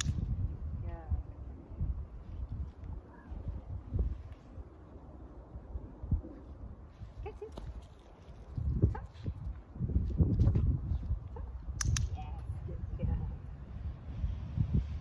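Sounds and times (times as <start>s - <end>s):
sharp clicks: 0.0s - 0.3s, 11.7s - 12.2s
wind rumble on microphone: 0.0s - 15.0s.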